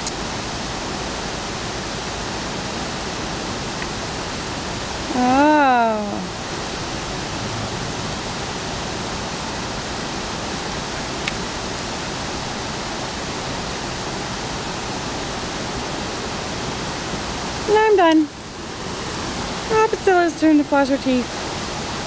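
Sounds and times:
steady rushing hiss: 0.0s - 22.0s.

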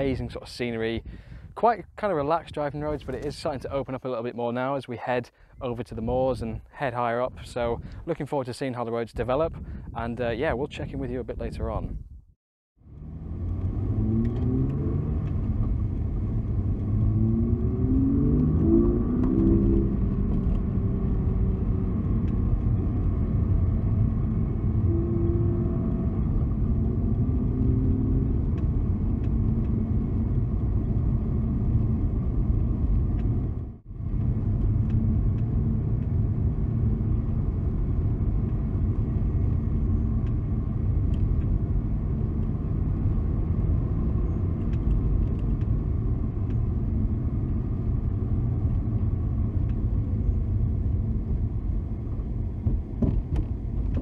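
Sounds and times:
car engine accelerating: 12.8s - 54.0s
tyre and road rumble: 12.8s - 54.0s.

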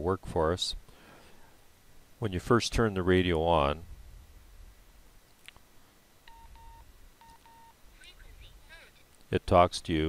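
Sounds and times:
radio beeping faintly: 6.3s - 9.1s.

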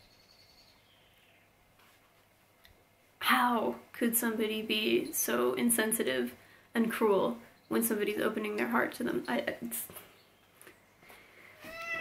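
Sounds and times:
cat meowing: 11.6s - 12.0s.

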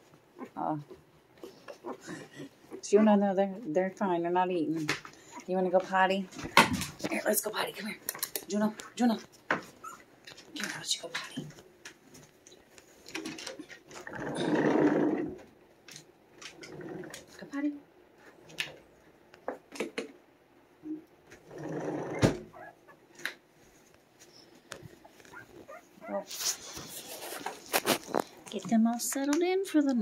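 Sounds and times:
dog sounds: 22.1s - 23.2s, 25.0s - 28.3s
rustling: 22.4s - 29.2s.

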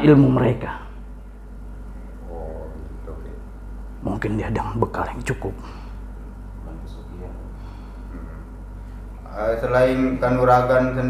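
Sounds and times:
low electrical hum: 0.0s - 11.0s
man's faint wordless murmur: 2.2s - 3.2s, 8.1s - 8.6s.

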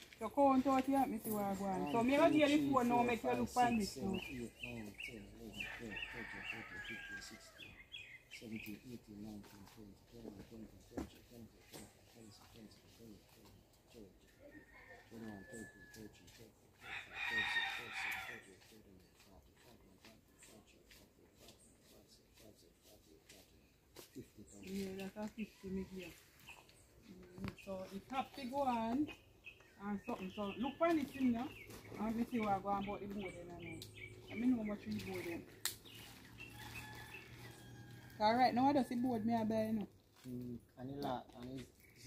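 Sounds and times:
rooster crowing: 5.5s - 7.7s, 14.4s - 16.2s, 16.8s - 18.4s, 36.4s - 39.2s.

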